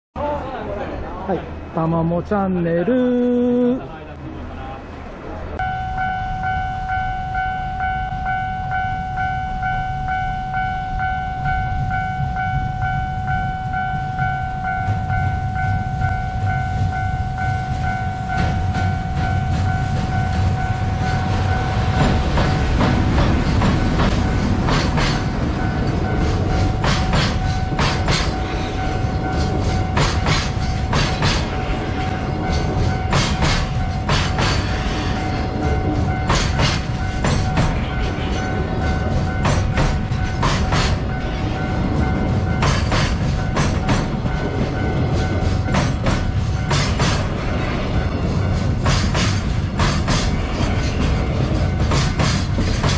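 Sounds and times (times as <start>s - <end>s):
freight train rumble: 0.2s - 52.9s
level-crossing alarm ringing: 5.6s - 48.8s
wheels clacking over rail joints: 16.4s - 52.9s.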